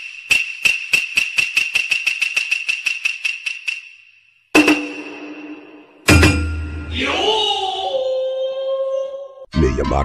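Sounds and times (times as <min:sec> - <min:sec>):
ringing metallic strikes: 0:04.6 - 0:07.3.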